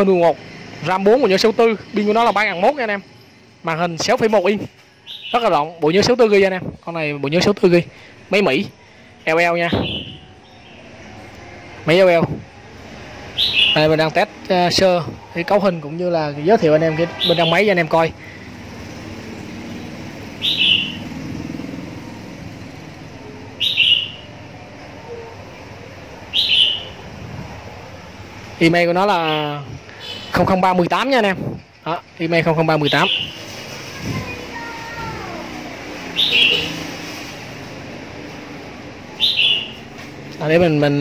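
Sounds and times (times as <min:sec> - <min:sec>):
distant street traffic rumble: 0:00.0 - 0:41.0
bird chirping: 0:04.9 - 0:05.8, 0:08.6 - 0:11.4, 0:13.3 - 0:14.1, 0:17.0 - 0:17.8, 0:19.2 - 0:22.1, 0:23.2 - 0:27.1, 0:29.1 - 0:30.3, 0:32.7 - 0:33.5, 0:36.0 - 0:36.9, 0:39.1 - 0:40.0.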